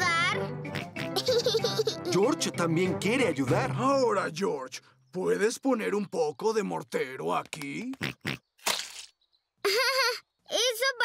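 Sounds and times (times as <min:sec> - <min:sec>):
high-pitched cartoon child's voice: 0:00.0 - 0:00.6, 0:10.0 - 0:11.0
person laughing: 0:01.0 - 0:02.2, 0:09.6 - 0:10.2
mortar splatting on ground: 0:08.6 - 0:09.1.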